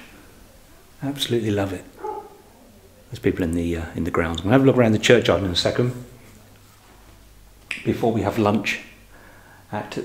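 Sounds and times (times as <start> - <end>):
faint low hum: 0.0 - 10.0
man speaking: 1.0 - 2.0, 3.1 - 6.2, 7.8 - 9.0, 9.7 - 10.0.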